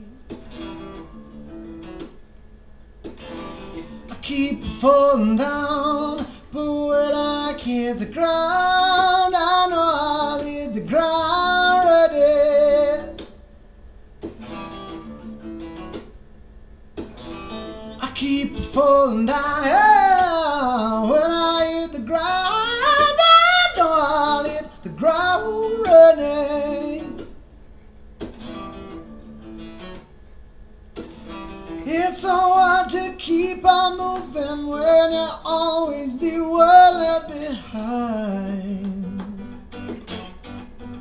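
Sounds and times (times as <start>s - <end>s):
acoustic guitar: 0.0s - 13.6s, 14.2s - 16.2s, 16.9s - 41.0s
man singing with vibrato: 4.1s - 13.2s, 18.0s - 27.3s, 31.8s - 39.5s.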